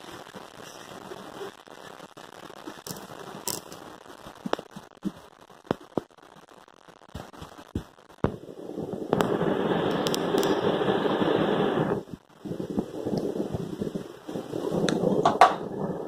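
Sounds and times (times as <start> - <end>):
crackling rustling handling noise: 0.0 - 8.1.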